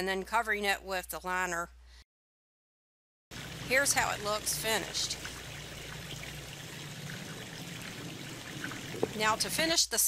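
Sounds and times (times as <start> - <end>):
water trickling over rocks: 3.3 - 9.7.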